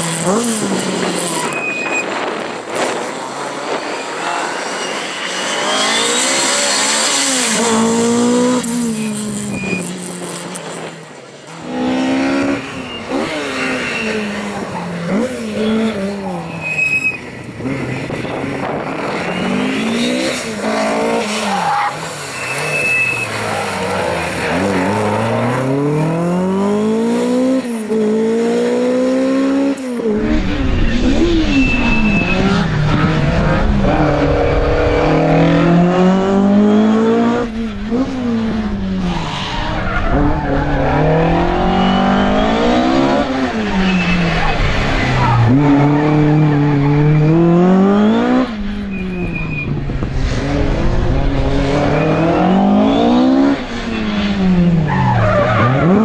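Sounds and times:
rally car engine revving: 0.0s - 56.0s
tyre squeals: 1.2s - 2.2s, 8.8s - 10.1s, 12.5s - 17.4s, 21.1s - 25.4s, 30.2s - 33.2s, 39.0s - 47.3s, 48.9s - 49.8s.

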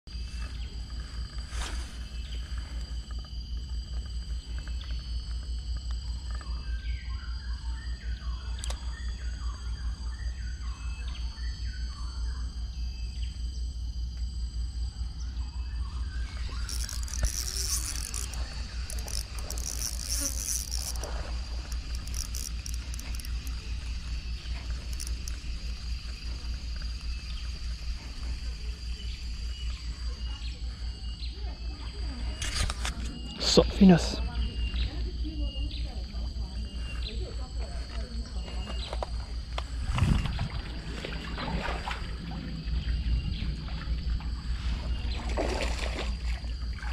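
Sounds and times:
insects buzzing: 0.1s - 46.9s
low rumble: 39.2s - 45.3s.

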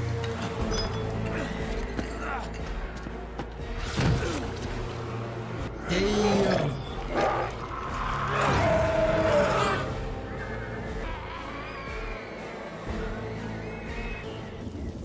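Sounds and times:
monstrous roaring calls: 5.8s - 14.2s.

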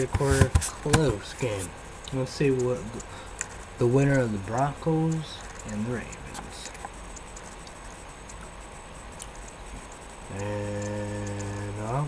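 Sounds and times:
faint clicks: 9.2s - 12.0s
man humming: 10.3s - 12.0s.

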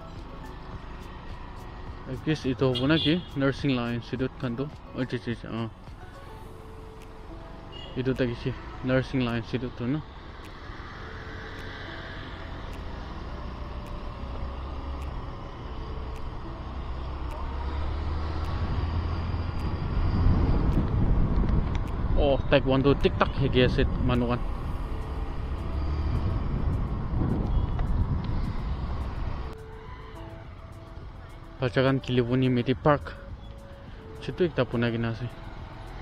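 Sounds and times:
motorbike riding rumble: 0.0s - 36.0s
street traffic: 0.0s - 36.0s
wind and road noise: 0.0s - 36.0s.

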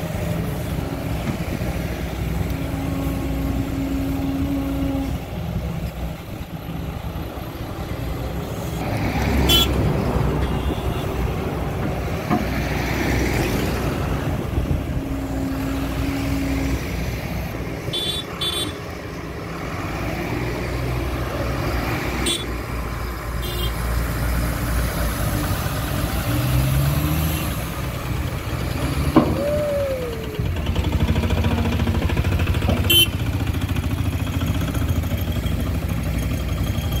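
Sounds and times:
diesel truck engine running: 0.0s - 37.0s.

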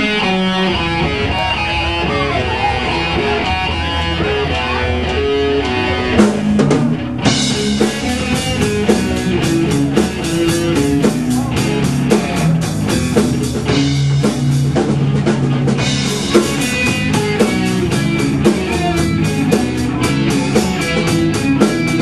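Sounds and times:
bass guitar: 0.0s - 22.0s
drum beat: 0.0s - 22.0s
talk box electric guitar: 0.0s - 22.0s.

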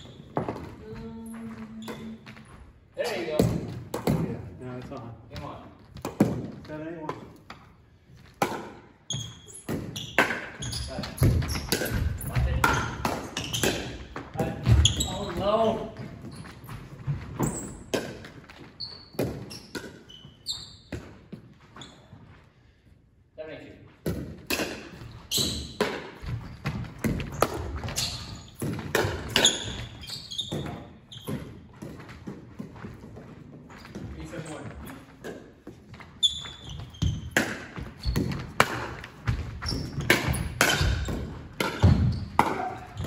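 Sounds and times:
ball bouncing on wooden floor: 8.4s - 19.9s, 24.0s - 43.0s.

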